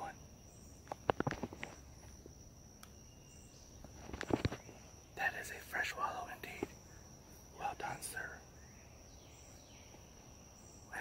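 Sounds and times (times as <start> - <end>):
high-pitched insect call: 0.0 - 11.0.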